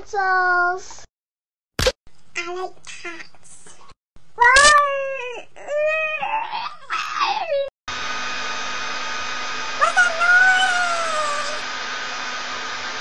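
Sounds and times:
boy wailing vocal noises: 4.4s - 7.7s
steady machine whir: 7.9s - 13.0s.

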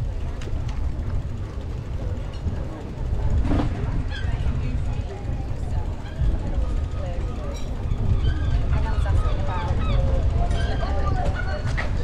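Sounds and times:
people's voices: 0.0s - 12.0s
wind rumble on microphone: 0.0s - 12.0s.

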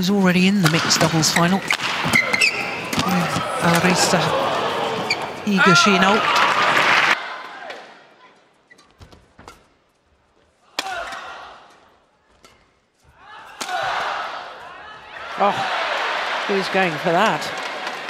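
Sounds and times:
arena crowd and voices: 0.0s - 8.7s, 10.6s - 18.0s
crowd noise: 0.0s - 8.8s, 10.6s - 18.0s
rackets hitting shuttlecock: 0.6s - 4.0s, 10.7s - 12.8s, 13.4s - 14.5s.

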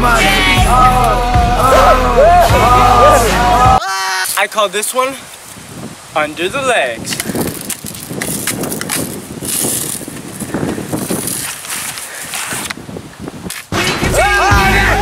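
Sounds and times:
rock song with singing: 0.0s - 3.8s.

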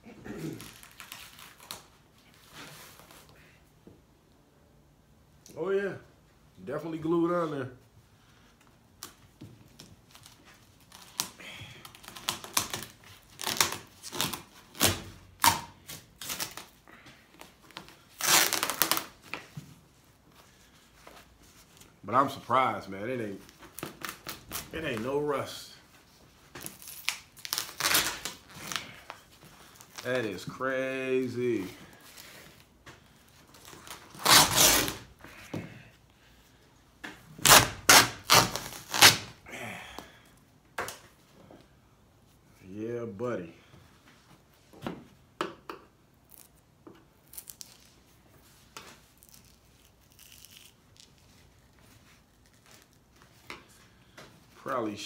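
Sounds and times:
vinyl tearing: 0.2s - 2.0s, 10.1s - 16.8s, 17.6s - 19.4s, 26.6s - 30.4s, 33.5s - 35.1s, 37.4s - 39.4s
vinyl covering crackling: 16.2s - 32.7s.

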